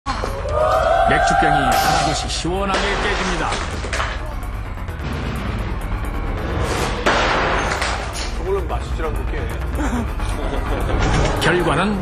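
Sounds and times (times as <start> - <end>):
background music: 0.1 - 12.0
glass bottle shattering: 2.8 - 4.2.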